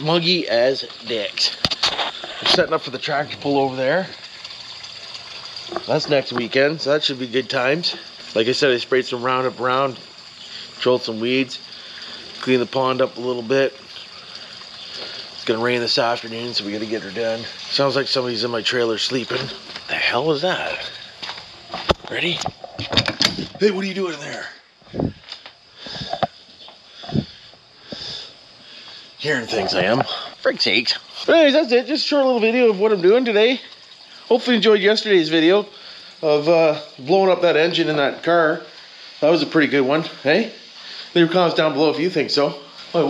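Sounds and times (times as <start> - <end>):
man talking: 0.0 - 1.6, 2.5 - 4.2, 5.8 - 10.0, 15.4 - 21.0, 22.0 - 22.5, 23.6 - 24.6, 29.2 - 33.6, 34.3 - 43.0
faint steady hiss: 0.0 - 43.0.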